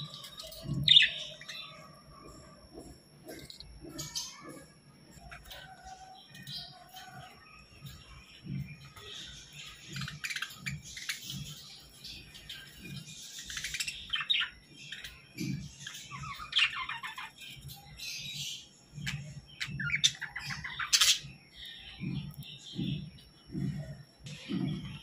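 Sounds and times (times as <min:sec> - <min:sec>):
budgerigars chirping and warbling: 0:00.0 - 0:25.0.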